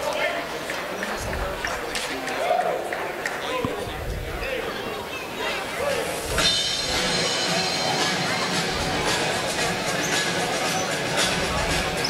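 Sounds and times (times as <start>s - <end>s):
spectator chatter echoing: 0.0s - 12.0s.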